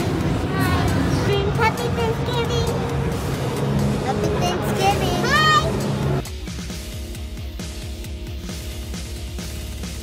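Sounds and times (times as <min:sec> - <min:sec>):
music: 0:00.0 - 0:10.0
music with steady beat: 0:00.0 - 0:10.0
steady low hums: 0:00.0 - 0:10.0
voices: 0:00.3 - 0:03.1, 0:03.9 - 0:05.8.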